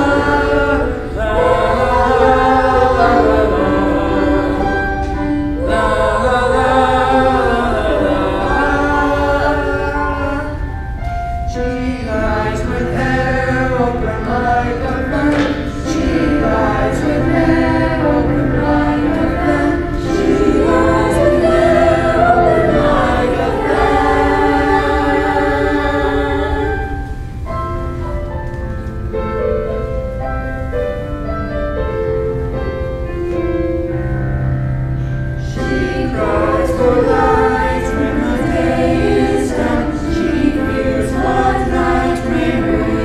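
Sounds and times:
choir singing sustained chords: 0.0s - 28.3s, 29.0s - 43.0s.

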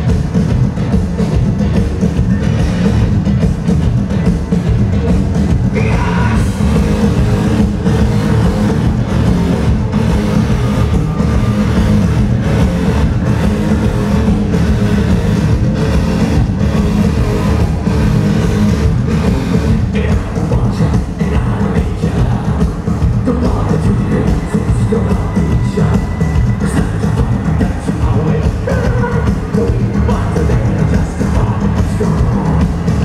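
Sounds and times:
live metal band playing loud: 0.0s - 33.0s.

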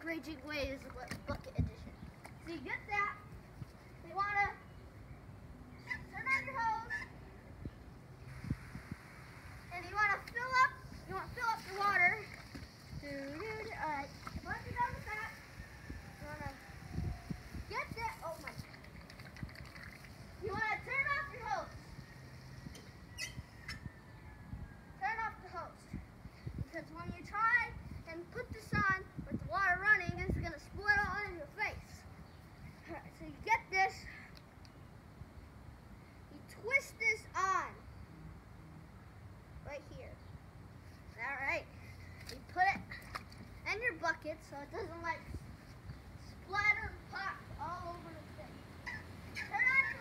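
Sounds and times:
child shouting: 5.9s - 7.1s, 48.8s - 50.0s
water hissing from hose: 8.2s - 20.4s.

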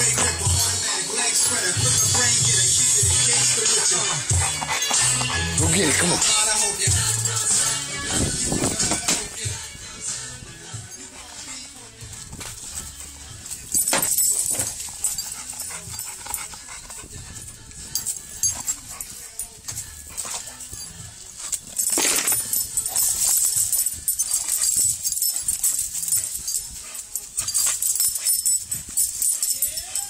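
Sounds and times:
dog noises: 0.0s - 9.5s, 10.7s - 30.0s
scuffing: 10.9s - 29.5s.

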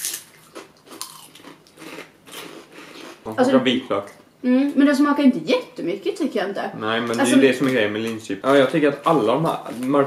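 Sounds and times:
chips crunching: 0.0s - 3.2s.

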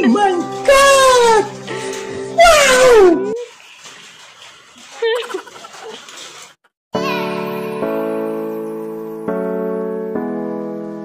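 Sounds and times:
music: 0.0s - 3.4s, 7.0s - 11.0s.

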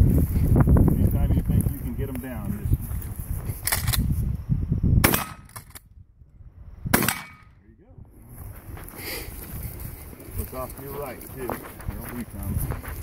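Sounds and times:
shotgun blasts: 5.0s - 5.8s, 6.9s - 7.6s.

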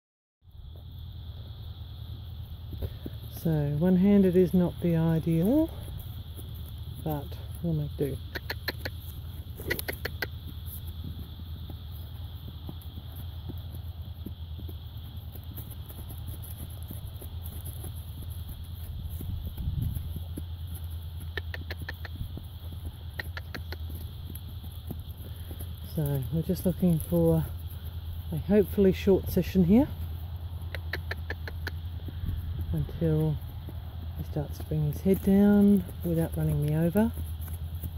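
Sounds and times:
high insect drone: 0.4s - 37.9s
trills of rapid clicks: 8.1s - 26.4s.

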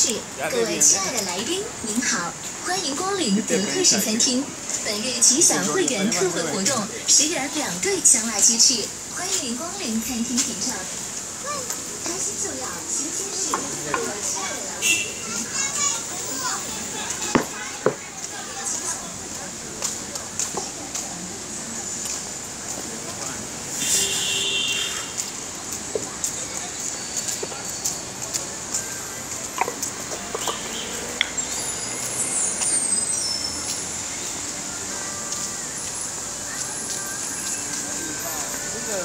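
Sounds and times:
children's voices: 0.0s - 21.4s, 34.2s - 38.5s
indistinct voices: 0.0s - 23.8s
busy street traffic: 0.0s - 39.0s.

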